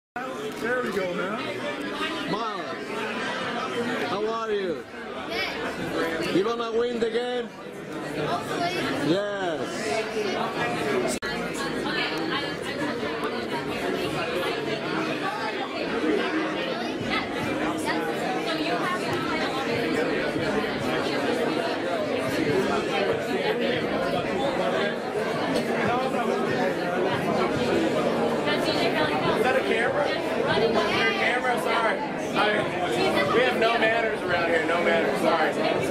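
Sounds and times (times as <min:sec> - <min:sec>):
crowd chatter in echoing hall: 0:00.2 - 0:35.9.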